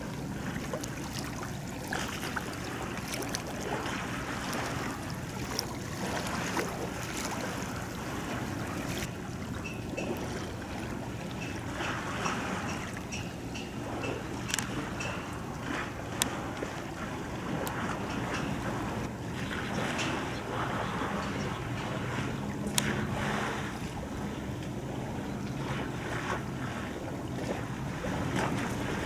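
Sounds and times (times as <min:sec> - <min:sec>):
waves washing on shore: 0:00.0 - 0:29.0.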